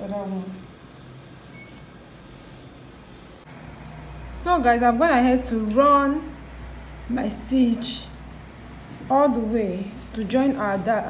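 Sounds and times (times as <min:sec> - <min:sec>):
low steady hum: 0:00.0 - 0:11.0
hands rustling fabric: 0:00.2 - 0:04.6.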